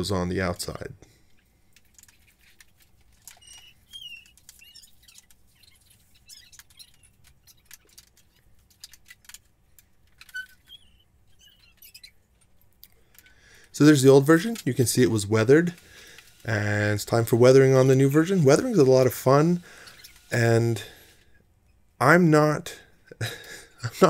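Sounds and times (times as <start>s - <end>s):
plastic parts clicking: 1.3s - 10.9s, 11.7s - 13.4s
faint high chirps: 3.2s - 9.2s, 10.1s - 12.2s.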